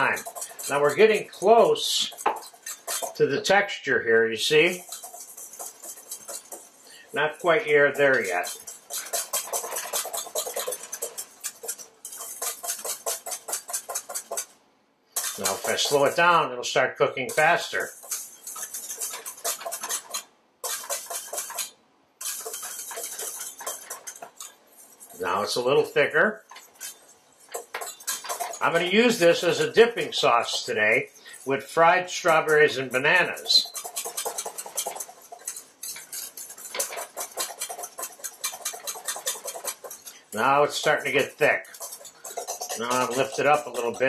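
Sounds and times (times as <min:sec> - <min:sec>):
wire whisk beating in metal bowl: 0:00.0 - 0:14.6, 0:15.2 - 0:44.0.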